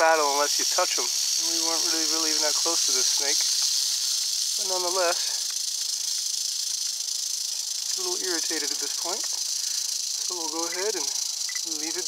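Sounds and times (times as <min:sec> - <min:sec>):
rattlesnake rattling its tail: 0:00.0 - 0:12.0.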